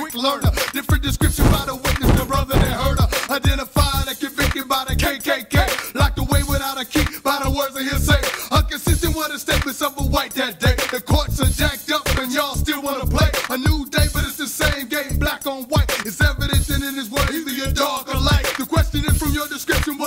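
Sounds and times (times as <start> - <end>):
man rapping over a beat: 0.0 - 20.0
steady kick drum: 1.0 - 4.0.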